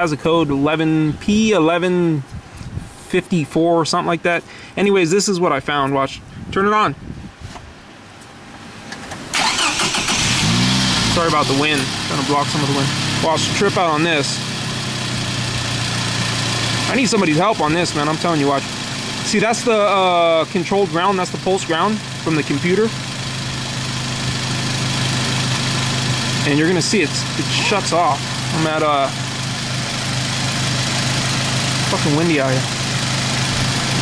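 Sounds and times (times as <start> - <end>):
wind buffeting microphone: 2.3 - 3.0, 6.2 - 7.5
car engine cranking and starting: 8.9 - 34.0.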